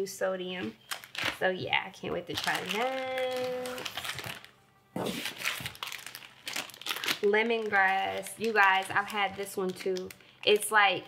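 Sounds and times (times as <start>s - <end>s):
packaging crinkling and rustling: 0.8s - 1.4s, 2.1s - 10.9s.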